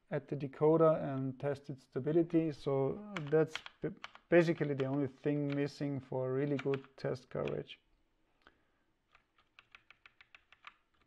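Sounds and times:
computer keyboard keystrokes: 0:06.5 - 0:07.6, 0:09.1 - 0:11.0.

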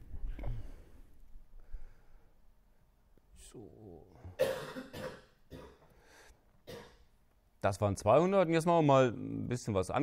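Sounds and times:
person coughing: 0:04.3 - 0:05.9, 0:06.7 - 0:07.1.

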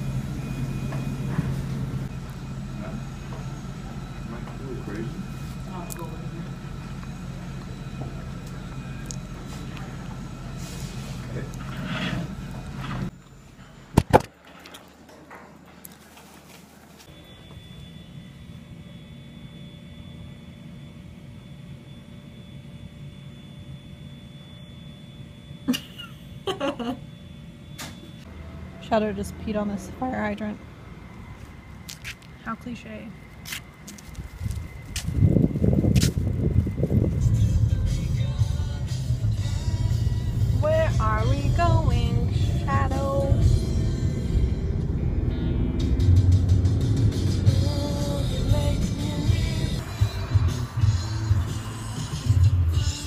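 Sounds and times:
low mechanical hum: 0:00.0 - 0:53.0.

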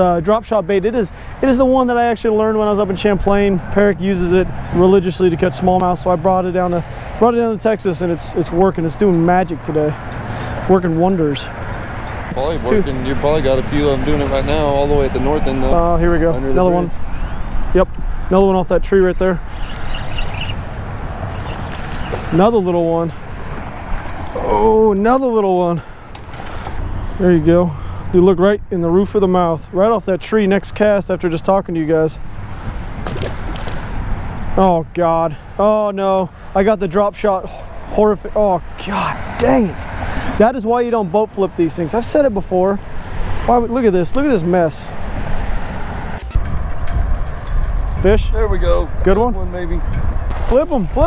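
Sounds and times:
wind buffeting microphone: 0:42.8 - 0:51.0.

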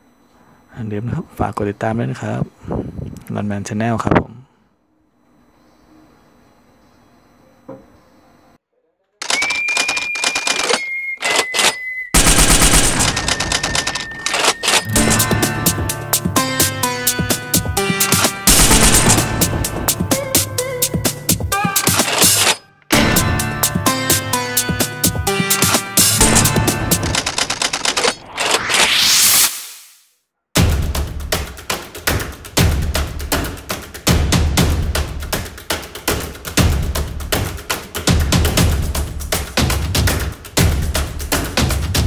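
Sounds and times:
rapid sharp clattering clicks: 0:09.2 - 0:14.9, 0:26.4 - 0:28.6
music: 0:14.8 - 0:27.3, 0:30.6 - 0:42.0
outro music: 0:14.8 - 0:29.9
rising whoosh: 0:28.0 - 0:30.1.

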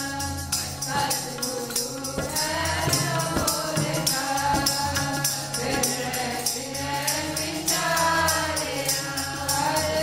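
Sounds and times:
tabla beat: 0:00.0 - 0:09.4
harmonium drone: 0:00.0 - 0:10.0
voices singing together: 0:00.0 - 0:10.0.

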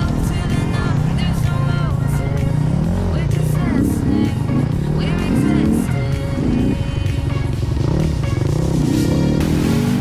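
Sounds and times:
background music: 0:00.0 - 0:10.0
motorcycle engine revving: 0:00.0 - 0:10.0.

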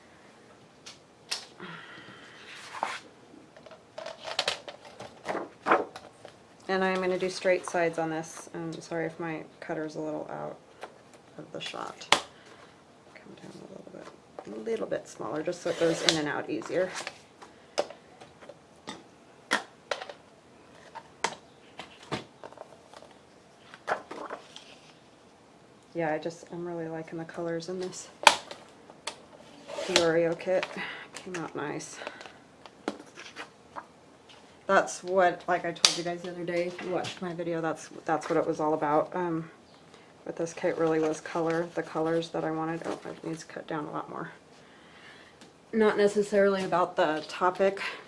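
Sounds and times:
paper sliding and rustling: 0:02.4 - 0:03.1.

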